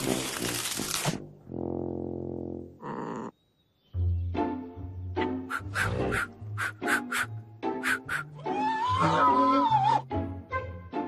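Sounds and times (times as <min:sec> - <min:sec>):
cartoon music with percussion: 0:05.3 - 0:09.2.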